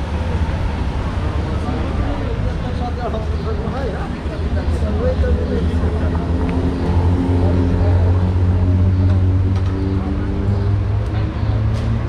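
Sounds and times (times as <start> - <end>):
murmur of people talking: 0.0 - 12.0.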